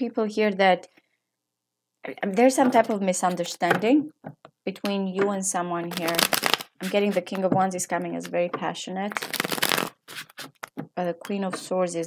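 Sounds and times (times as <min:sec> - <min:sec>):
cards being shuffled: 0:05.9 - 0:07.4, 0:09.1 - 0:10.9
cards snapping: 0:09.2 - 0:10.8.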